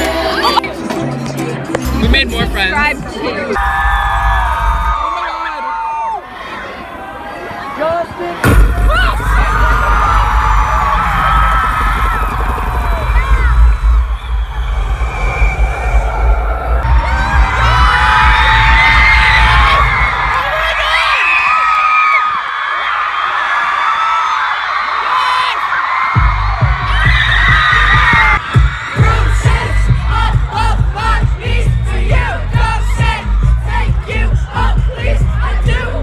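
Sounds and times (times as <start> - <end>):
heavy pulsing bass music: 0.0 - 3.5, 8.4 - 14.3, 14.9 - 19.8, 26.2 - 36.0
crowd screaming and cheering: 0.0 - 36.0.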